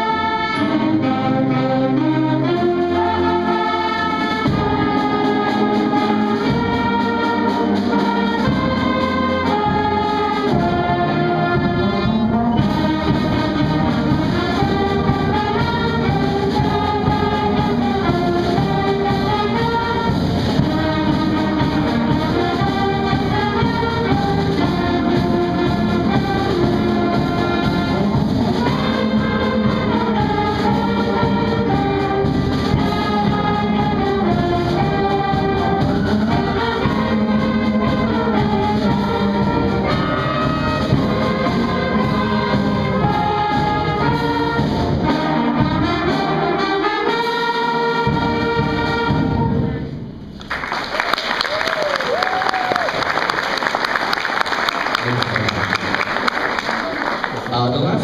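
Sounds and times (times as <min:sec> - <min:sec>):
concert band playing chords: 0:00.0 - 0:58.0.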